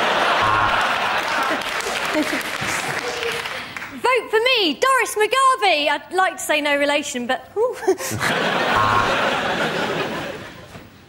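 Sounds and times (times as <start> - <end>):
audience laughing: 0.0 - 3.6, 8.0 - 10.8
audience applauding: 0.0 - 4.0.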